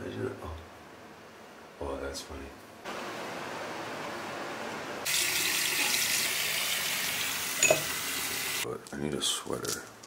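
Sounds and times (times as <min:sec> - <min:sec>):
faucet running water into sink: 0:05.1 - 0:08.6.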